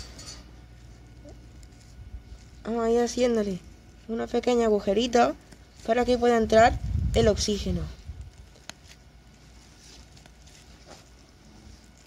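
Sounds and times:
low background hum: 0.0 - 12.0
skewer pricking cling film: 8.1 - 12.0.

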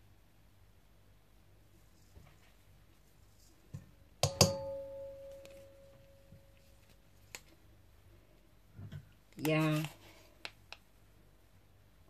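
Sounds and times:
steel bowl knocked and ringing: 4.2 - 6.4.

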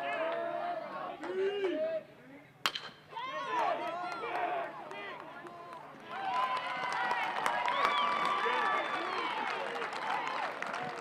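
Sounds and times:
metal bat hitting ball: 2.6 - 3.0
crowd shouting and cheering: 3.1 - 11.0.

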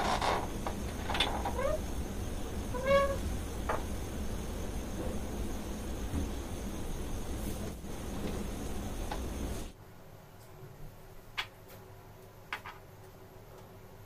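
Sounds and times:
low room hum: 0.0 - 14.0.

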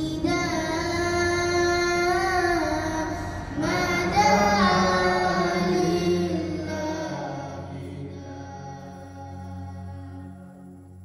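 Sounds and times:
high voice singing long notes: 0.0 - 11.0.

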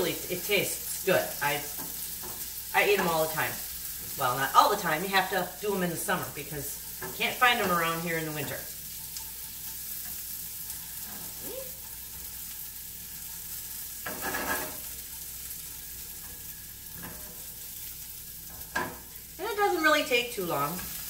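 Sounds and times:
vegetables sizzling in a frying pan: 0.0 - 21.0
spatula scraping pan: 6.8 - 19.2.

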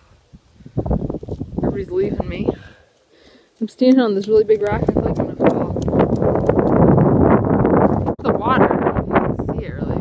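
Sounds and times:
wind buffeting microphone: 0.0 - 2.8, 3.8 - 10.0.

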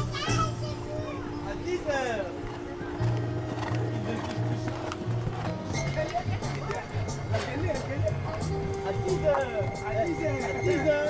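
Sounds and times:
horse hoofbeats on sand: 1.8 - 11.0
background music with bass line: 3.0 - 11.0.

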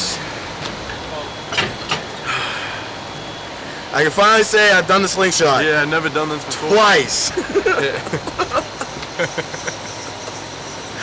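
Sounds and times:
low outdoor background hum: 0.0 - 11.0
breathy puffs of laughter: 7.3 - 10.1.

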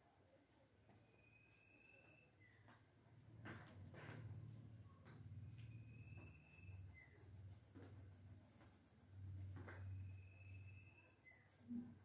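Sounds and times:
pencil scratching on paper: 6.2 - 12.0.

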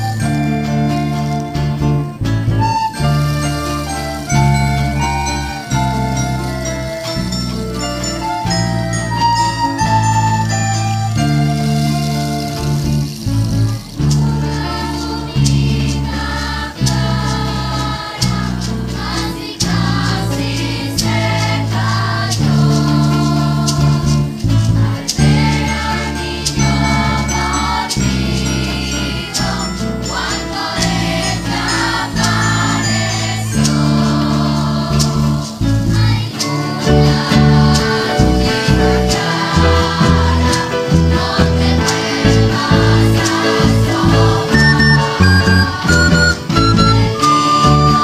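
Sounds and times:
live band accompaniment: 0.0 - 48.0
children's choir singing: 2.6 - 48.0
sharp percussion hits: 36.4 - 48.0.

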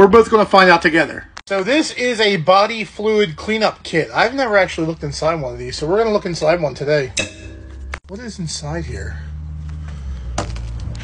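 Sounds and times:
steady low hum: 4.0 - 8.5.

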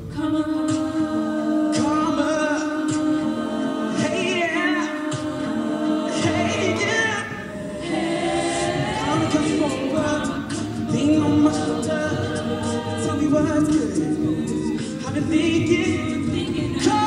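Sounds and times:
a cappella group singing: 0.0 - 17.0.

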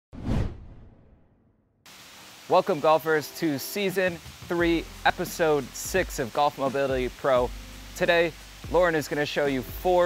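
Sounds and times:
whoosh: 0.1 - 1.8.

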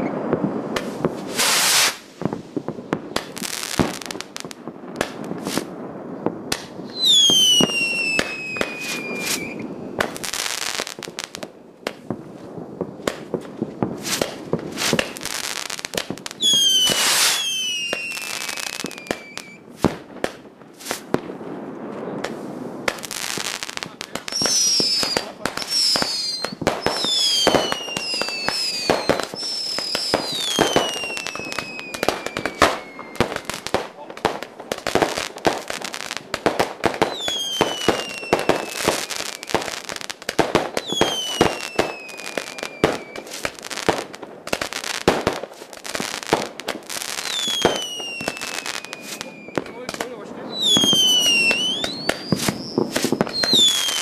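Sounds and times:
fireworks whistles falling in pitch: 0.0 - 2.3, 6.8 - 11.3, 14.0 - 19.9, 22.9 - 33.9, 34.9 - 44.0, 44.6 - 54.0
fireworks bangs and crackles: 0.0 - 54.0.

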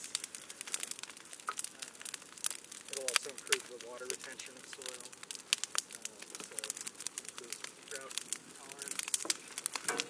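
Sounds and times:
wood fire crackling and popping: 0.0 - 10.0.

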